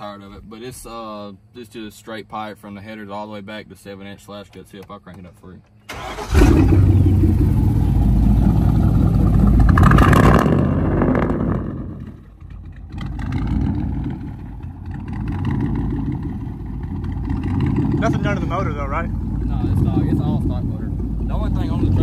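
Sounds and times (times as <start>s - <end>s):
loud unmuffled engine exhaust: 6.4s - 22.0s.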